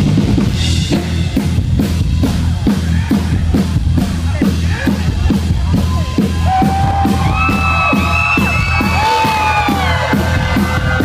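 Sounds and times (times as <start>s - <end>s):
drum beat: 0.0s - 11.0s
live rock band playing: 0.0s - 11.0s.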